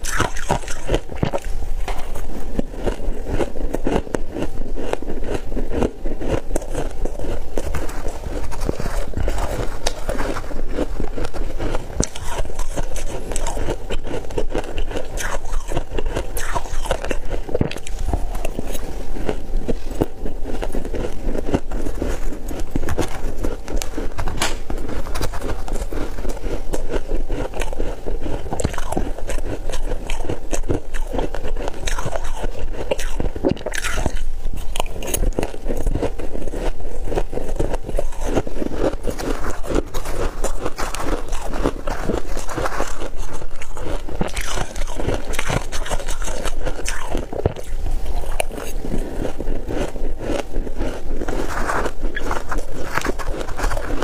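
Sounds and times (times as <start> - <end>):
person crunching ice: 0.0 - 54.0.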